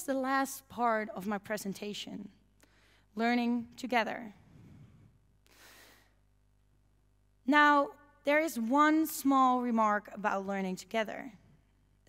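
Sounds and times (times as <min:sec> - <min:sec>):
faint breath into microphone: 0:02.6 - 0:03.1, 0:04.4 - 0:06.2.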